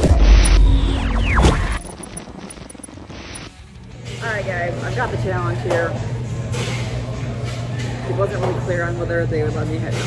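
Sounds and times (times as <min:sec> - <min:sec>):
glitchy electronic music: 0:00.0 - 0:03.6.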